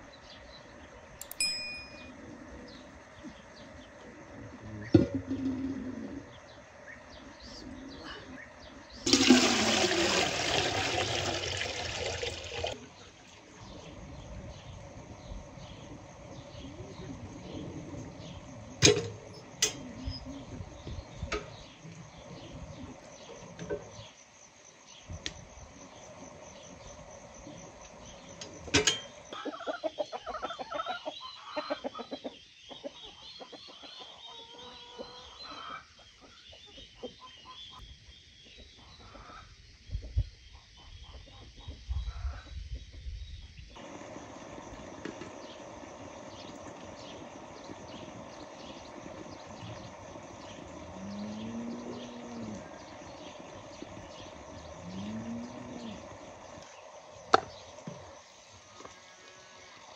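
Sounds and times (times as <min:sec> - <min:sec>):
high chirping: 0:01.2 - 0:02.2
knocks and clatter at stove: 0:18.8 - 0:19.8, 0:28.7 - 0:29.2.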